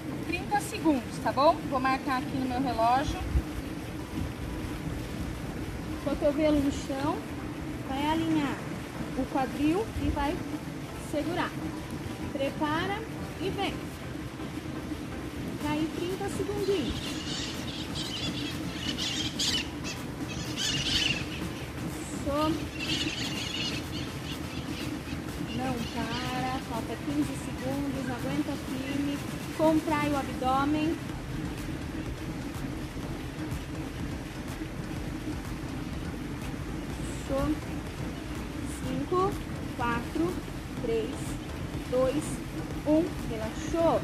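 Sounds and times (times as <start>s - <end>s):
low background noise: 0.0s - 44.0s
low outdoor background noise: 0.0s - 44.0s
birds squawking and chirping: 16.6s - 26.6s.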